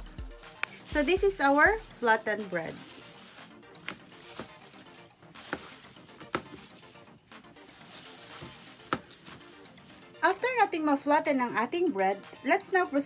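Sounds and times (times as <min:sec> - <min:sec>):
plastic gloves crinkling: 0:00.3 - 0:10.7.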